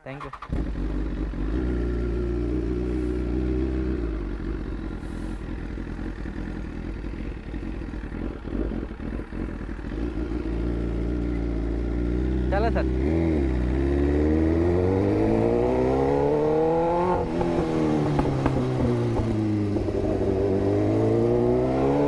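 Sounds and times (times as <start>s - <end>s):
motorcycle engine idling: 0.0s - 13.8s, 17.2s - 20.7s.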